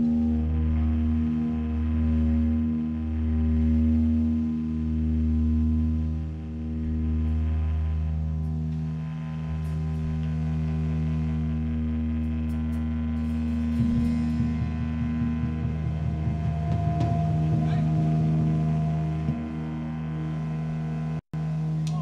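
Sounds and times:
electric amplifier drone: 0.0s - 22.0s.

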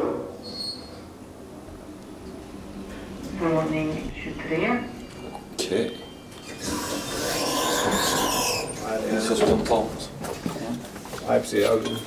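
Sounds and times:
faint high squeal: 0.4s - 1.1s.

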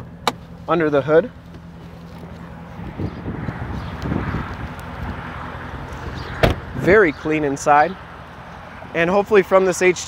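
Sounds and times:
wind buffeting microphone: 2.6s - 7.1s.

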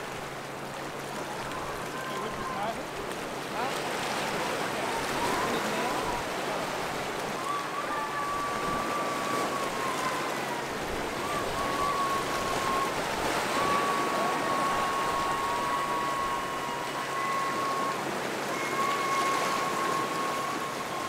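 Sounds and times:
waves splashing on rocks: 0.0s - 21.0s.

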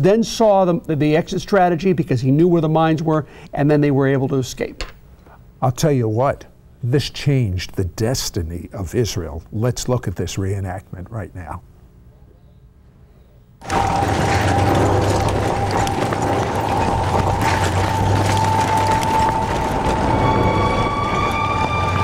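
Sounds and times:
sustained soundtrack tone: 13.6s - 22.0s
tank engines and tracks rumbling: 13.6s - 22.0s.

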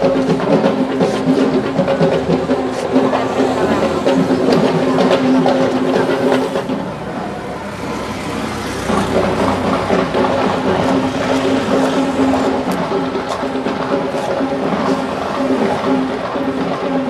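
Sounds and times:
small engine passing by: 0.0s - 17.0s.

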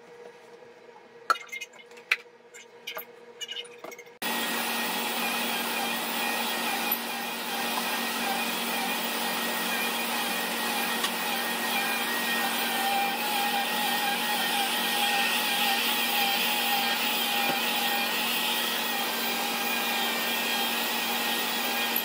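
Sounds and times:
vacuum cleaner motor whine: 4.2s - 22.0s.

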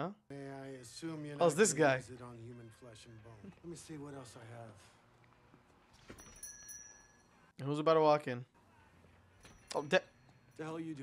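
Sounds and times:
faint high ringing: 6.0s - 7.6s, 9.2s - 11.0s.

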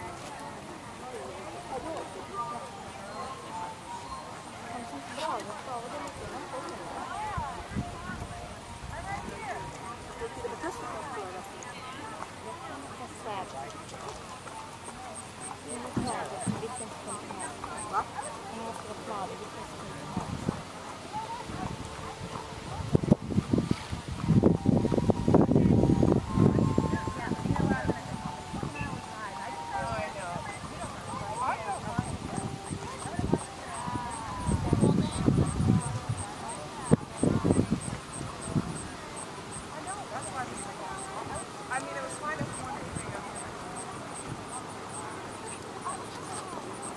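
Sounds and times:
indistinct conversation: 0.0s - 22.9s, 26.1s - 46.9s
people talking quietly: 0.0s - 46.9s
faint high-pitched ticking: 1.7s - 19.9s, 26.1s - 46.9s.

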